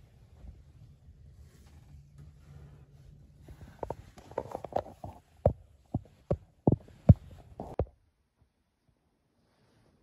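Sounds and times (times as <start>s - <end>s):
muffled thumps: 3.7s - 8.0s.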